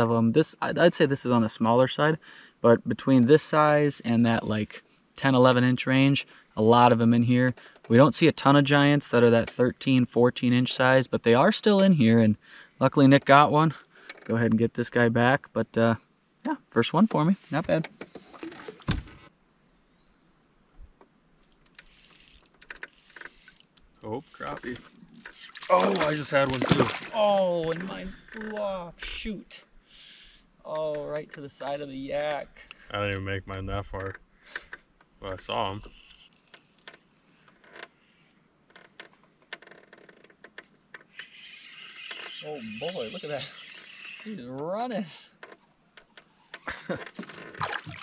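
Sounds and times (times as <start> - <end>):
faint outdoor ambience hiss: 0.0 - 48.0
faint clicking and rattling: 20.8 - 25.5, 32.6 - 43.0
fishing tackle clicking and knocking: 21.4 - 23.8
fish splashing into water: 25.4 - 27.3, 47.6 - 48.0.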